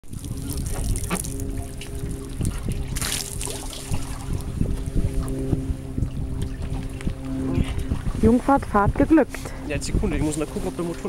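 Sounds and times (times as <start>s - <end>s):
steady low hum: 0.1s - 11.0s
water splashing off boat hull: 0.1s - 11.0s.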